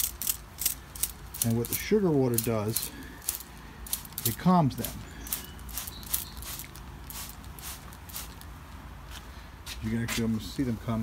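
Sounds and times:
spray bottle hissing spritzes: 0:05.2 - 0:08.5.

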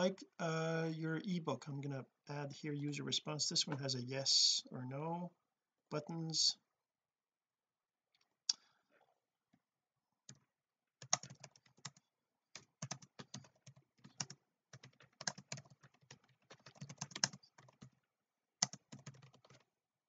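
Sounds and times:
keyboard typing: 0:11.0 - 0:12.0, 0:12.6 - 0:18.0, 0:18.6 - 0:19.6.

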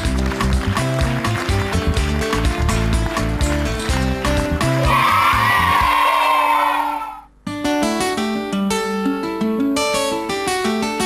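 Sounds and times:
background music with beat: 0:00.0 - 0:04.9
plucked guitar music: 0:00.0 - 0:04.9, 0:07.4 - 0:11.0
children cheering and screaming: 0:04.8 - 0:07.3.

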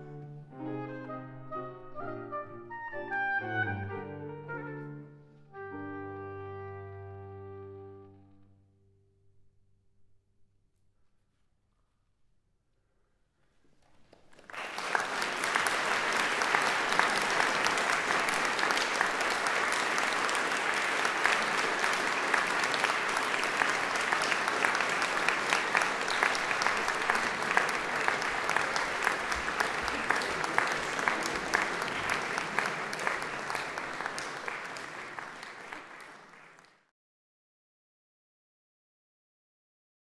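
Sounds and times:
audience applauding: 0:13.8 - 0:36.9.

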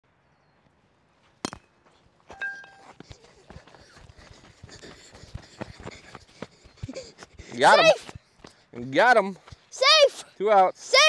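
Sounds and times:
person calling out: 0:07.6 - 0:08.0.

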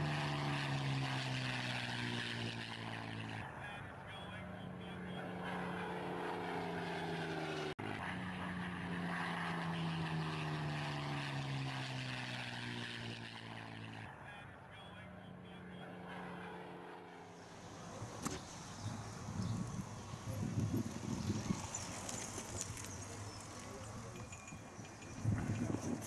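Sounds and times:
propeller aircraft engine droning: 0:00.0 - 0:26.0.

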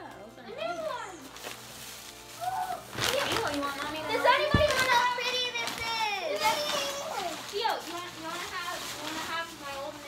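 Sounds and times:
children squealing and exclaiming: 0:02.3 - 0:03.2, 0:04.0 - 0:07.6.

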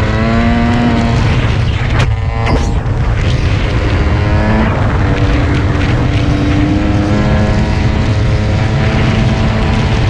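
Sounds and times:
dirt bike engine running: 0:00.0 - 0:10.0.

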